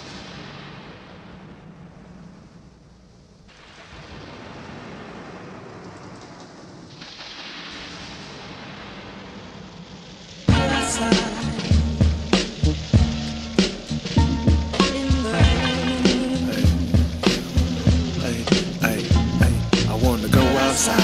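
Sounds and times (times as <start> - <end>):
low thunder rumbling: 0.0 - 21.0
rain hissing: 0.0 - 21.0.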